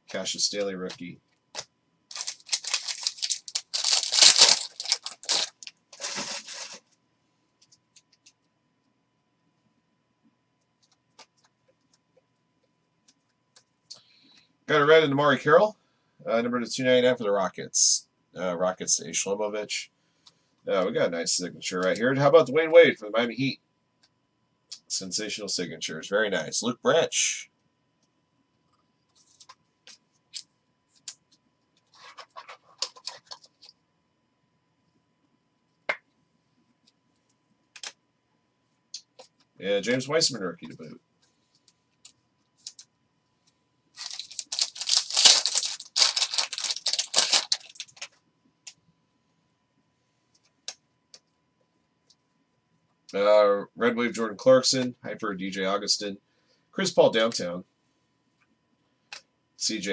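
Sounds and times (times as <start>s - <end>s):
foil wrapper tearing: 2.1s - 6.8s, 44.0s - 48.1s
trading cards scraping: 2.1s - 6.8s, 31.8s - 33.6s.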